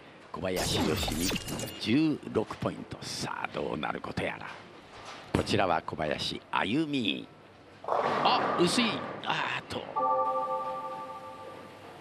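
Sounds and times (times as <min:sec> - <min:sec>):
bell-like chime: 0:10.0 - 0:11.9.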